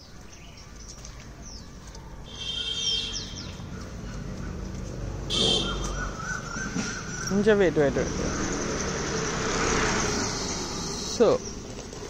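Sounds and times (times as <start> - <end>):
bird trilling: 5.3 - 8.9.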